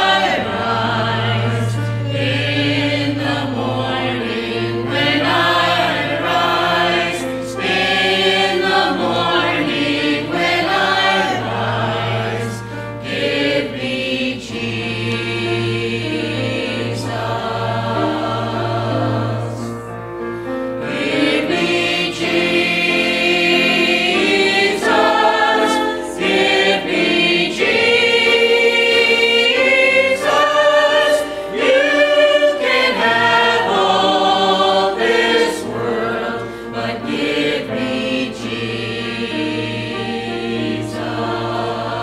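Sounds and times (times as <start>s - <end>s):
church choir singing a hymn: 0.0s - 42.0s.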